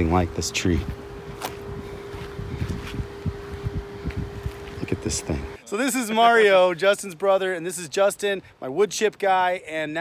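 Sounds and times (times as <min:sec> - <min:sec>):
wind buffeting microphone: 0:00.0 - 0:05.6
machinery humming: 0:00.0 - 0:05.7.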